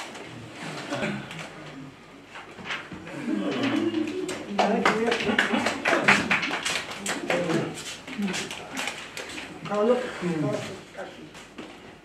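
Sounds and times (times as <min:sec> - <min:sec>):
group clapping: 0:03.5 - 0:09.3.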